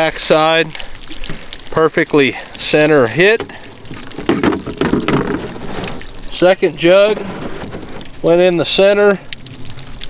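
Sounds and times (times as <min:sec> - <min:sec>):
water pattering and splashing: 0:00.0 - 0:10.0
plastic jug knocks: 0:03.3 - 0:06.0.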